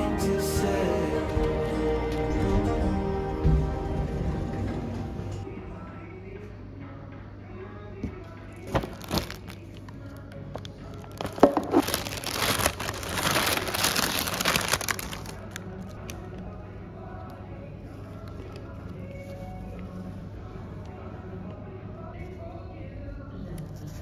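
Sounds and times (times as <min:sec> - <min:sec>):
soft background music: 0:00.0 - 0:24.0
plastic wrapping crinkling: 0:08.5 - 0:16.3.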